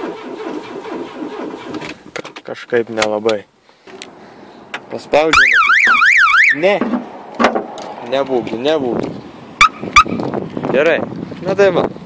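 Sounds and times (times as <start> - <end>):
car alarm siren warbling: 5.3 - 6.6.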